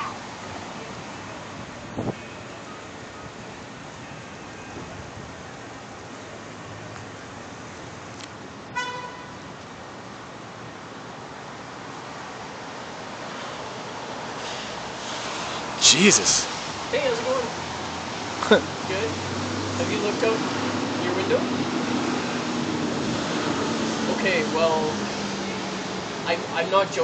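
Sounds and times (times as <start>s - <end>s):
distant traffic hiss: 0.0s - 27.0s
car horn toot: 8.8s - 9.3s.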